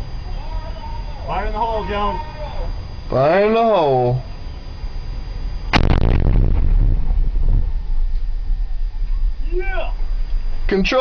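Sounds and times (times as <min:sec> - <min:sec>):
low rumble: 0:04.2 - 0:11.0
sharp explosion blast: 0:05.6 - 0:10.5.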